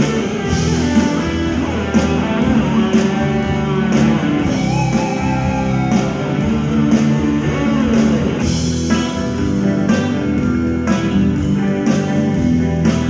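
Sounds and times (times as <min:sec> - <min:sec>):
electric guitar sustained notes: 0:00.0 - 0:13.0
rock band beat: 0:00.0 - 0:13.0.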